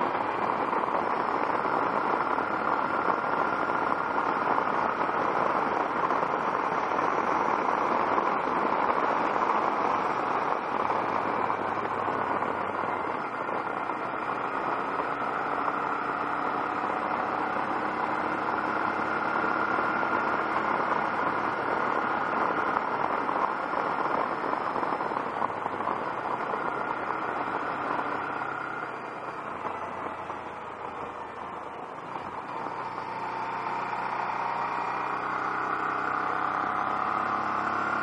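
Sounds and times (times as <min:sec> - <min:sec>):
motorcycle engine running: 0:00.0 - 0:38.0.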